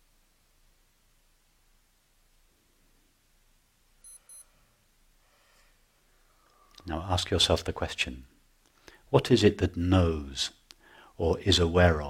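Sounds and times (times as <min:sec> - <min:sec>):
high-pitched electronic beeps: 0:04.0 - 0:04.4.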